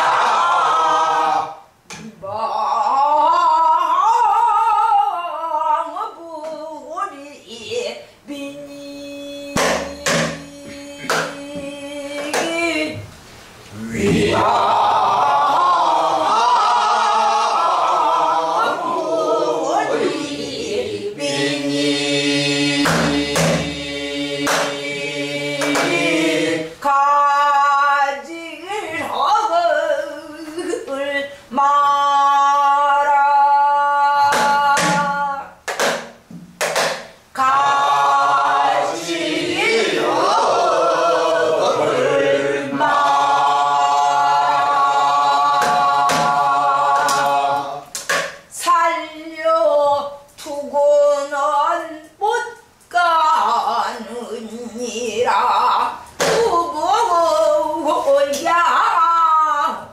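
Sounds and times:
woman singing long note: 8.3 - 13.0
barrel drum strikes: 9.6 - 10.4, 22.8 - 23.8
barrel drum strokes: 22.8 - 24.7.

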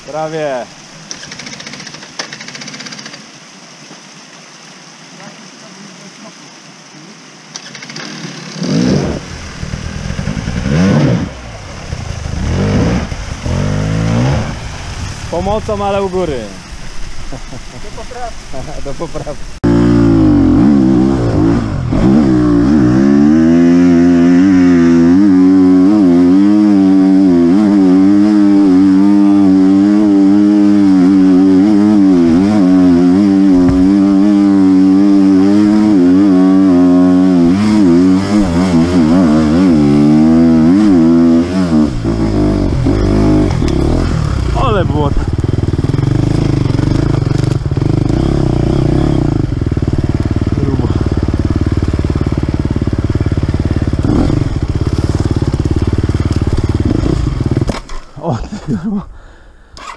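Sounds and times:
dirt bike engine revving: 0.0 - 3.3, 7.5 - 16.6, 18.9 - 58.1.

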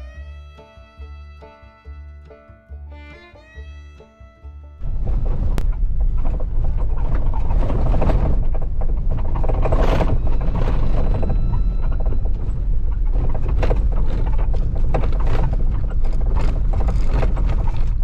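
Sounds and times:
vehicle rattles and creaks: 4.7 - 18.0
vehicle driving on gravel: 4.8 - 18.0.

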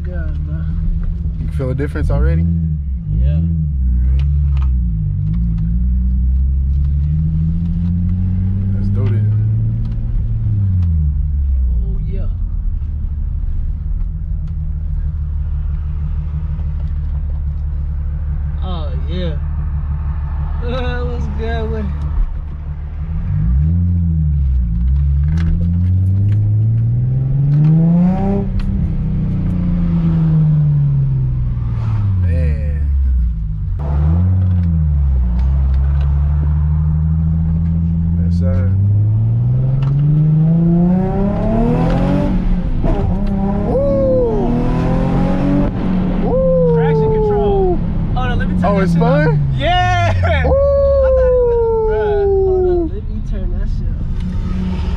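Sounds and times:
car engine revving: 0.0 - 54.9.

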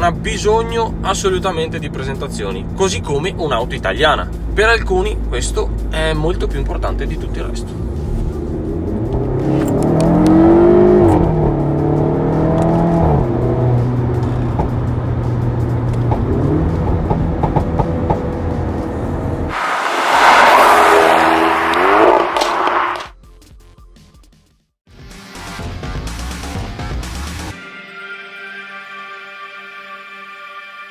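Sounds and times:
car engine accelerating: 0.0 - 23.1.

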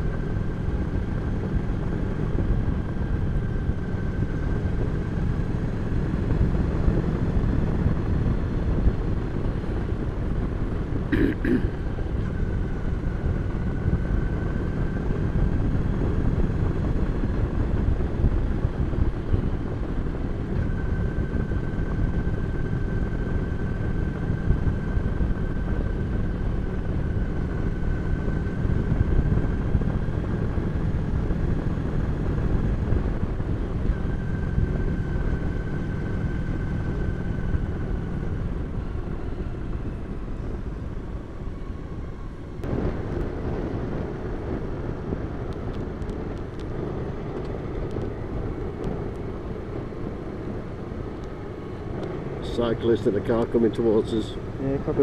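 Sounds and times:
motorcycle engine cruising: 0.0 - 55.0
wind rush: 0.0 - 55.0.

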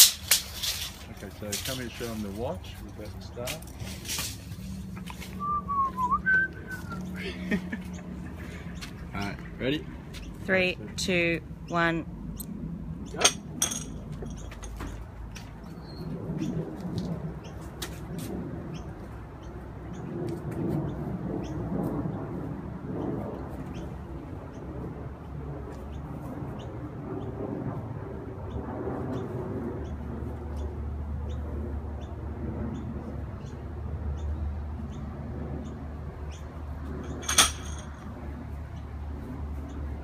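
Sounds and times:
low outdoor rumble: 0.0 - 40.0
birds chirping: 1.0 - 27.5, 28.4 - 40.0.

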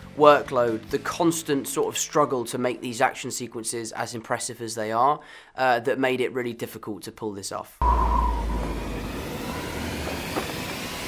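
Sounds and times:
brief high tone: 7.8 - 9.6
low rumble: 7.8 - 11.0
rushing wind: 7.8 - 11.0.

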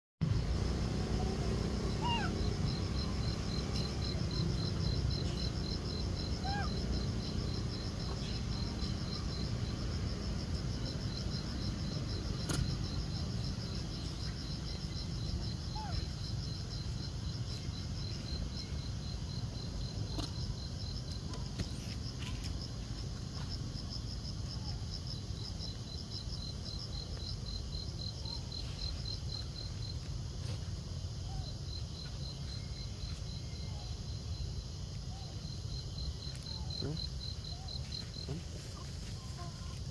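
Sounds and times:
insects chirping in trills: 0.2 - 39.9.

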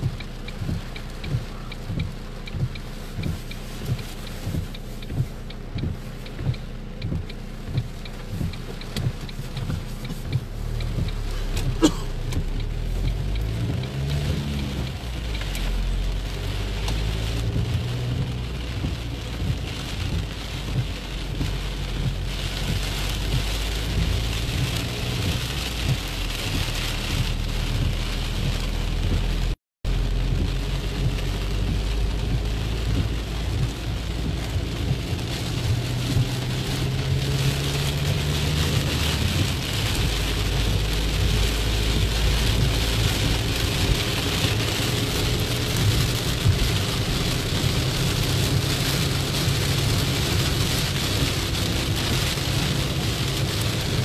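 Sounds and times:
car driving hum: 0.0 - 54.0
heavy rain on car windshield: 0.0 - 54.0.

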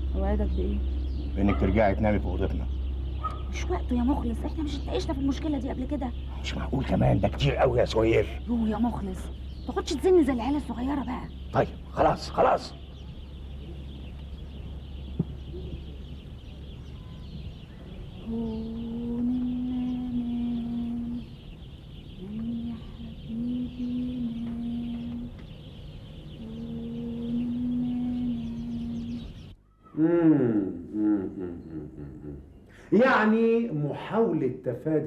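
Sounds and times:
faint low hum: 0.0 - 35.0
woman humming a slow tune: 18.0 - 21.5, 22.1 - 25.5, 26.3 - 32.6.

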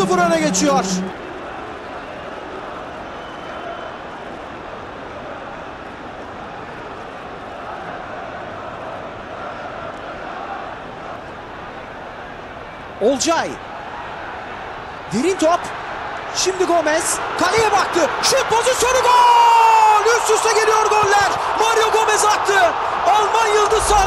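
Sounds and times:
stadium crowd roar: 0.0 - 24.0.

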